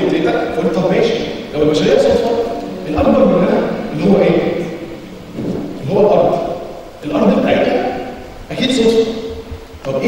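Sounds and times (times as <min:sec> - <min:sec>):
man speaking in a large hall: 0:00.0 - 0:10.0.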